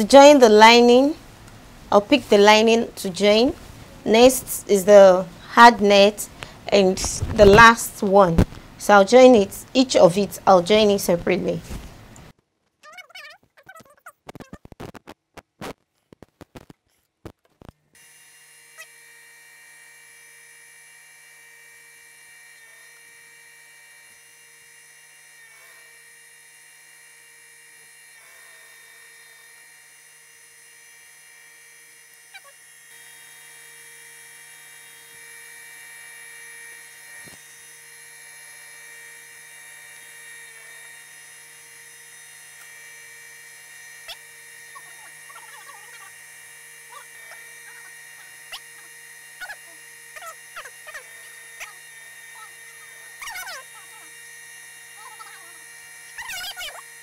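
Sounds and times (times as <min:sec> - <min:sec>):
sewing machine motor humming: 0:27.7 - 0:57.0.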